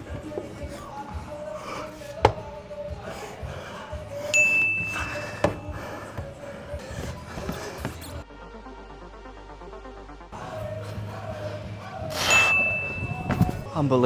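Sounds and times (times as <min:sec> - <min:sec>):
background music: 0:00.0 - 0:14.0
high steady ding: 0:04.4 - 0:05.6, 0:12.3 - 0:13.4.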